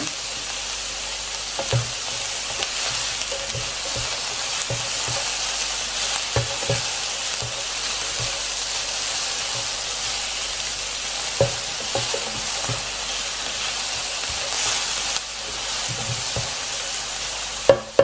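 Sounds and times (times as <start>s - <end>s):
onion sizzling in a frying pan: 0.0s - 18.0s
spatula scraping and tapping pan: 1.5s - 10.2s, 11.3s - 16.8s.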